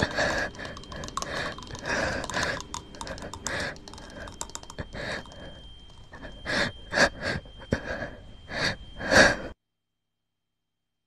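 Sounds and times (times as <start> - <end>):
person gasping: 0.0 - 9.5.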